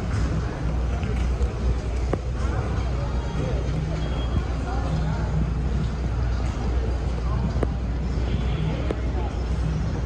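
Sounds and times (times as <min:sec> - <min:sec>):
faint indistinct voices: 0:00.0 - 0:10.0
low terminal rumble: 0:00.0 - 0:10.0.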